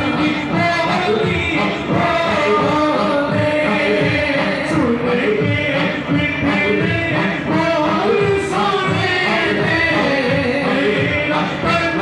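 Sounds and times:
men singing devotional music: 0.0 - 12.0.

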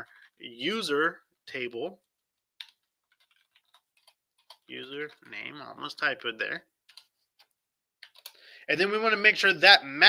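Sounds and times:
computer keyboard typing: 2.6 - 5.2.

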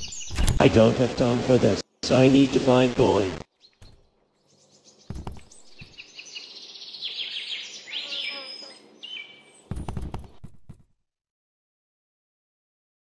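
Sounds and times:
bird-like chirps and whistles: 0.0 - 0.5, 3.6 - 9.8
sharp clicks: 0.0 - 0.7.

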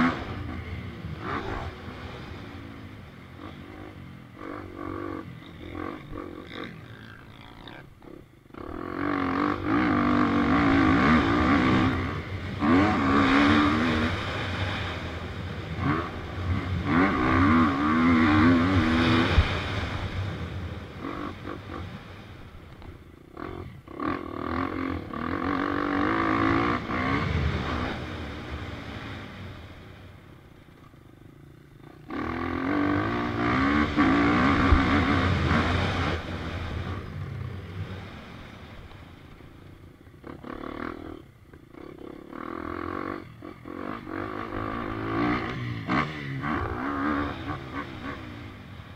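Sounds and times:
dirt bike engine revving: 0.0 - 30.0, 31.1 - 48.9.

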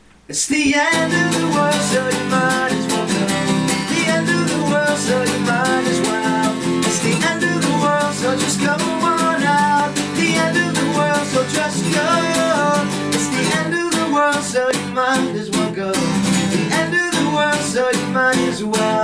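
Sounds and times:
acoustic guitar strumming: 0.0 - 19.0
man singing: 0.3 - 19.0.

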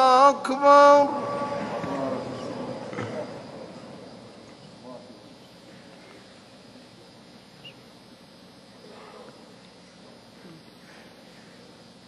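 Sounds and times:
man's voice over loudspeaker: 0.0 - 3.4
faint steady background hum: 0.0 - 12.0.

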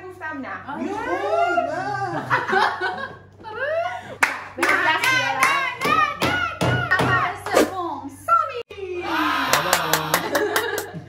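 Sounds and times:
excited voices shouting: 8.9 - 10.5
rhythmic hand clapping: 9.5 - 11.0.

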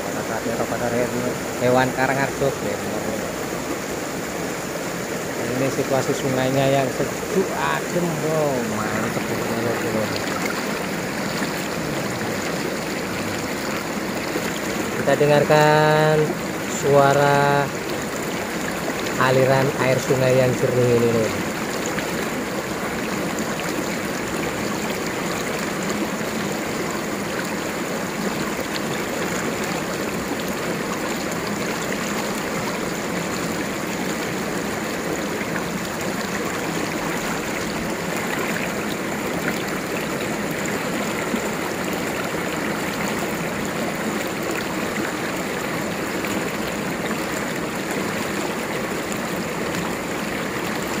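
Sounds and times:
river running over rocks: 0.0 - 51.0.

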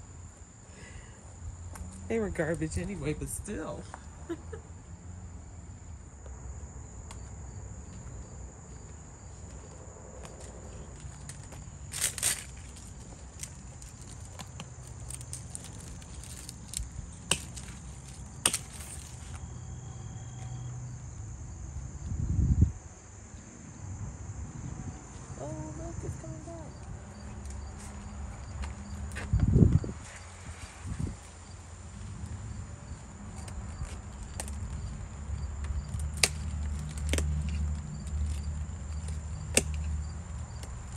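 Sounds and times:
insects trilling: 3.5 - 40.9
leaves and stems rustling: 11.0 - 19.4.

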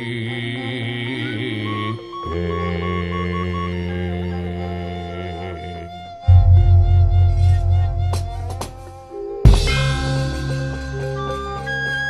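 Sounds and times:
wavering chant-like melody: 0.0 - 12.0
deep sustained tones: 6.2 - 11.8
short repeated high notes: 6.3 - 10.7.

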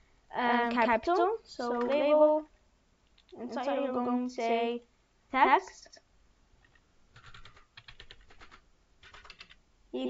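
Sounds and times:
typing on computer keyboard: 6.6 - 9.6.

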